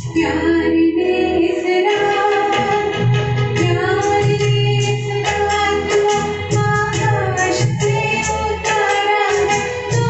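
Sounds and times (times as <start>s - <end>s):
keyboard accompaniment: 0.0s - 10.0s
woman singing into a microphone: 0.0s - 10.0s.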